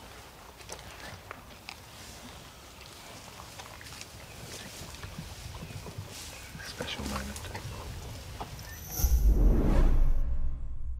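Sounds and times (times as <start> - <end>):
soft outdoor rustling: 0.0 - 9.1.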